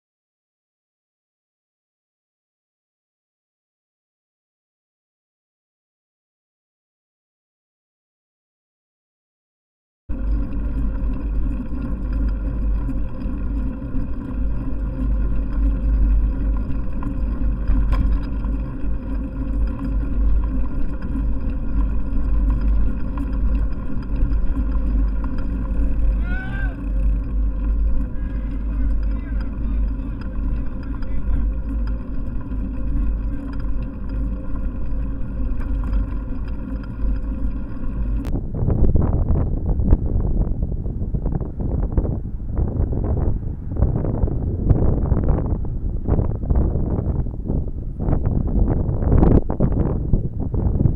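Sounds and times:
car engine idling: 0:10.1 - 0:38.3
wind noise on microphone: 0:10.1 - 0:50.9.

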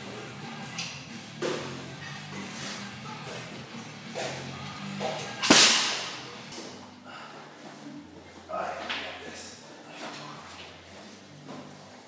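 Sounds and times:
background music: 0:00.0 - 0:08.8
barbell dropped on rubber floor: 0:05.4 - 0:06.3.

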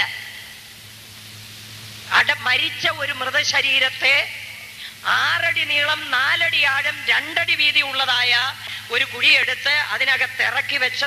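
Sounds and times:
background hiss: 0:00.0 - 0:11.0.

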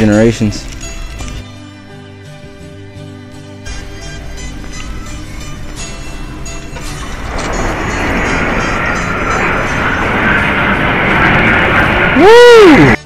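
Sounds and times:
jet aircraft flying overhead: 0:03.7 - 0:13.0
loud rising and falling tone: 0:03.7 - 0:13.0.

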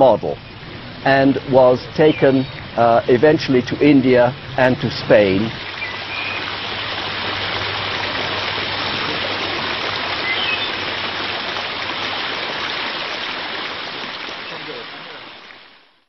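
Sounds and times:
fountain water splashing: 0:00.0 - 0:16.0.

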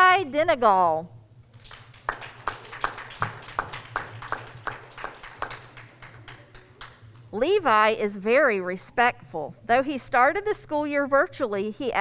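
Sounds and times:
audience clapping: 0:01.5 - 0:07.2.

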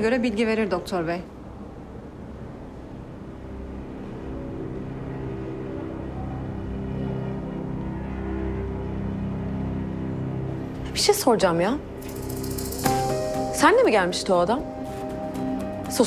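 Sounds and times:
low dramatic drone: 0:01.4 - 0:16.0.

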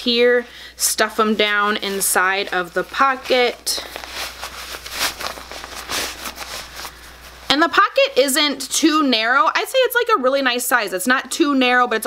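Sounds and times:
cloth rustling and swishing: 0:01.0 - 0:08.3.

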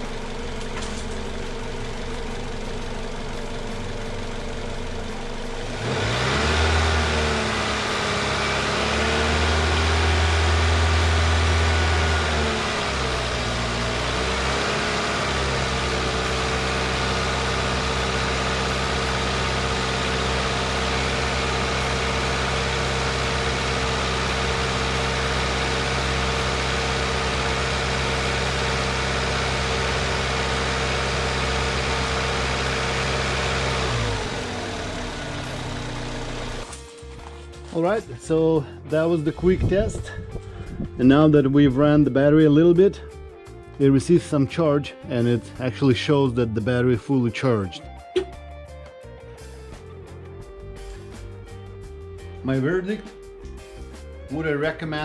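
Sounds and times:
car engine idling and revving: 0:00.0 - 0:44.2, 0:45.0 - 0:52.4.

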